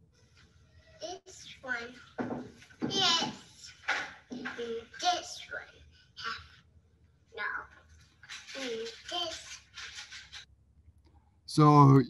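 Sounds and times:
child's voice: 0.8 - 2.2, 2.8 - 6.5, 7.4 - 7.8, 8.5 - 9.6.

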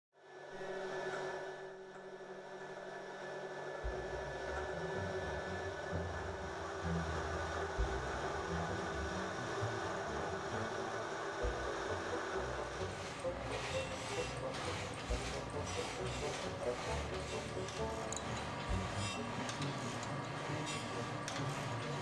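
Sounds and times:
machine humming and whining: 0.2 - 22.0.

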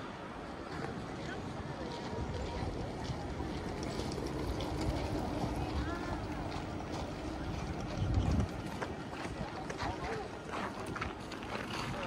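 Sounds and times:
distant traffic hum: 0.0 - 12.0
faint voices: 0.0 - 12.0
wind noise on microphone: 1.5 - 12.0.

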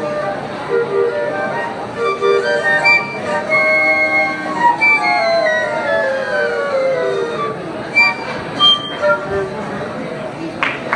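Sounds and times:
flute choir playing: 0.0 - 9.7.

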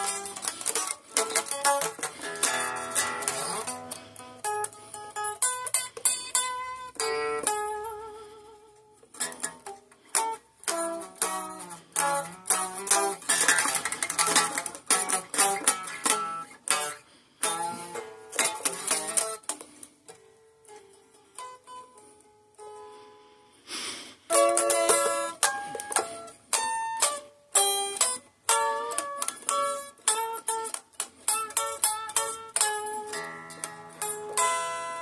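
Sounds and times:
unplugged electric guitar blues lead: 0.0 - 35.0.

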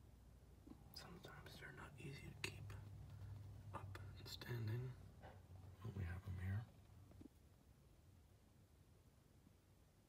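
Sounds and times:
faint whispered speech: 0.9 - 2.9, 3.6 - 5.1, 5.8 - 6.7.

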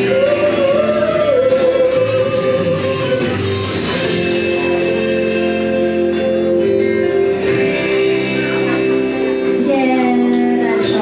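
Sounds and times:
electric guitar: 0.0 - 11.0
woman singing into a microphone: 9.5 - 11.0.

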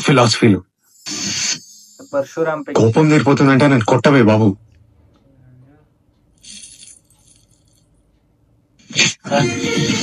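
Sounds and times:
high metallic jingle: 6.3 - 8.1.

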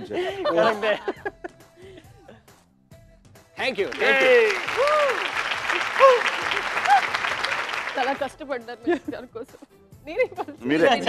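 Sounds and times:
audience applauding: 3.7 - 8.3.

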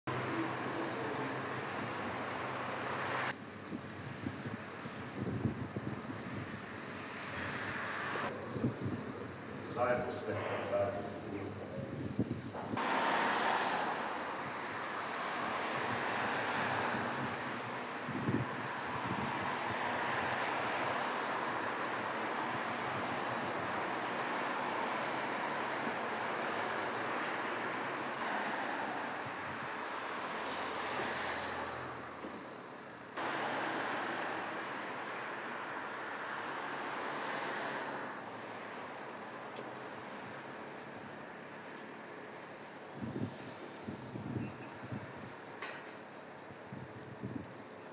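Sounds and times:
cars passing: 0.1 - 3.4, 6.2 - 47.4
wind buffeting microphone: 3.7 - 7.6, 8.3 - 9.6, 11.5 - 12.8, 15.6 - 21.0, 43.0 - 45.4, 46.6 - 47.6.

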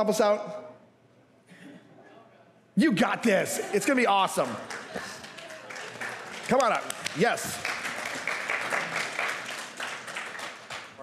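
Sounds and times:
crowd clapping: 3.0 - 11.0.

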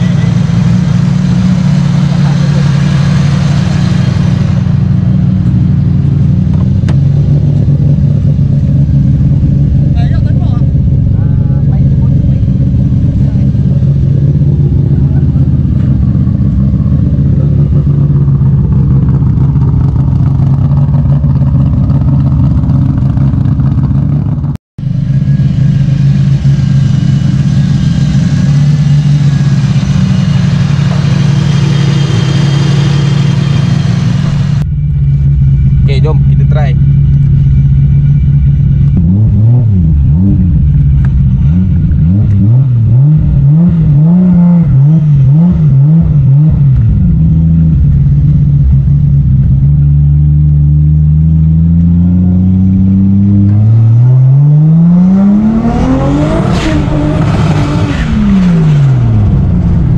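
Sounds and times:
car engine idling: 0.0 - 59.9.

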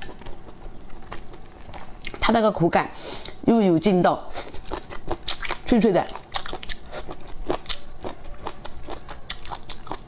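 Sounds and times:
crunchy chewing: 4.4 - 10.0.

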